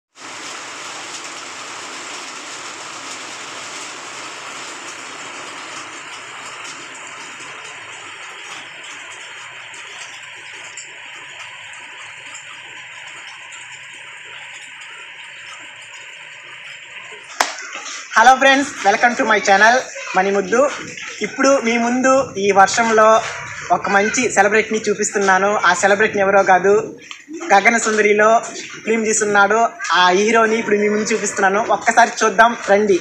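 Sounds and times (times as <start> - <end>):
rain on wet pavement and foliage: 0.1 - 33.0.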